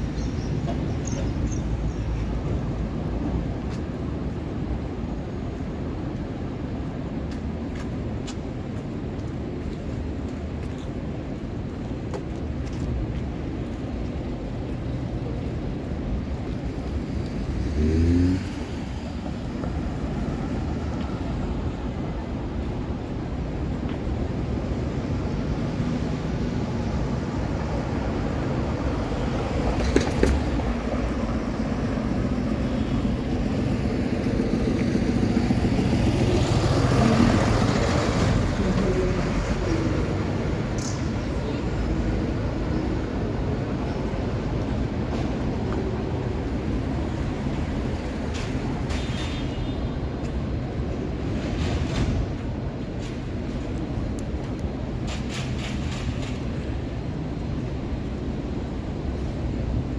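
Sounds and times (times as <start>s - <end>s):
cars passing: 0.0s - 59.9s
vehicle passing close: 17.0s - 20.9s.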